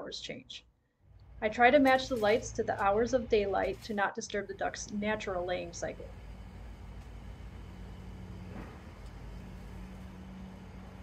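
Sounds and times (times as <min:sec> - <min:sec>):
low rumble and hum: 0:01.1 - 0:11.0.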